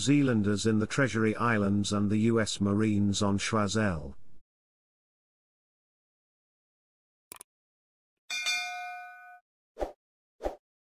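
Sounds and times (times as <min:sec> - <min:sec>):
notification bell chime: 0:08.3 - 0:09.4.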